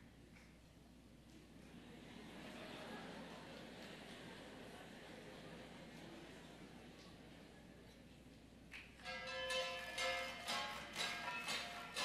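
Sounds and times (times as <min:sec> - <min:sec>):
bronze gongs ringing: 0:09.0 - 0:12.0.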